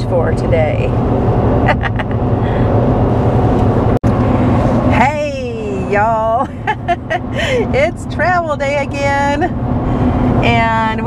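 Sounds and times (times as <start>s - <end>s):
road and engine drone: 0.0s - 11.0s
person laughing: 1.6s - 2.4s, 6.4s - 7.7s.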